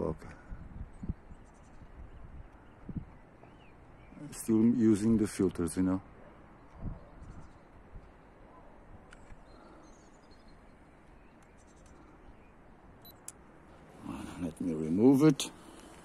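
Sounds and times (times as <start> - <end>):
camera clicks and handling: 9.0 - 9.5.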